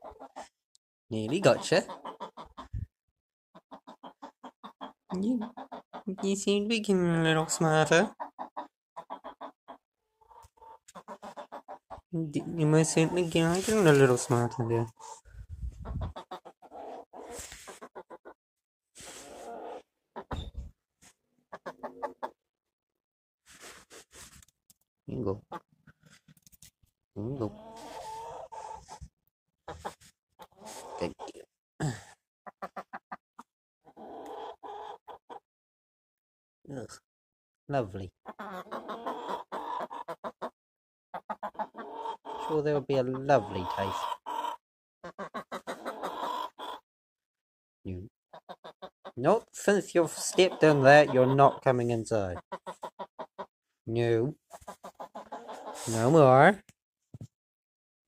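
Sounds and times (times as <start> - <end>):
hen clucking: 0.0 - 0.5, 1.1 - 2.9, 3.6 - 18.4, 19.2 - 20.6, 21.5 - 22.4, 27.2 - 29.1, 29.7 - 31.4, 32.5 - 33.2, 33.9 - 35.4, 38.3 - 40.5, 41.2 - 46.8, 48.3 - 53.5, 54.5 - 56.2.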